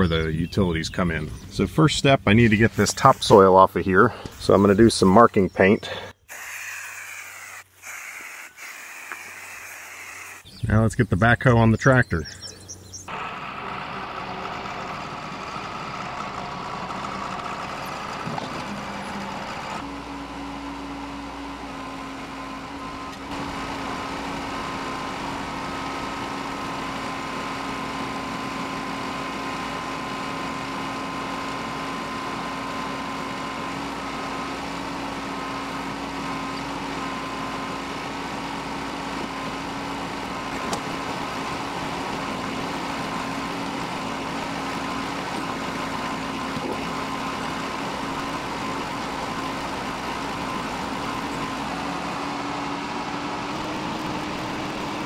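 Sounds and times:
tractor diesel engine running: 0.0s - 55.0s
backhoe digging: 13.1s - 55.0s.

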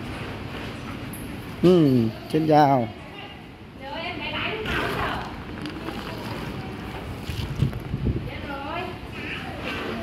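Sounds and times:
wind noise: 7.1s - 8.6s.

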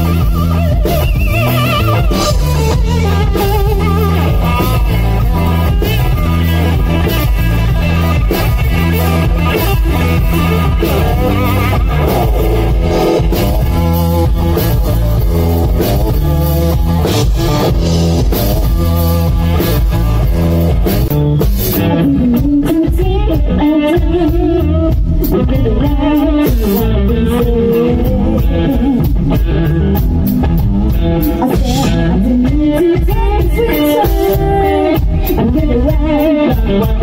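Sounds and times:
blues band playing: 0.0s - 37.0s
woman singing: 21.8s - 29.6s, 31.3s - 37.0s.

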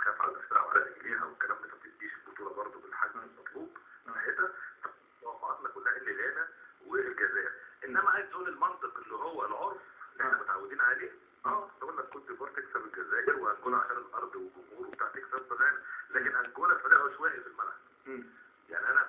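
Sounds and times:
man talking: 0.0s - 19.0s.

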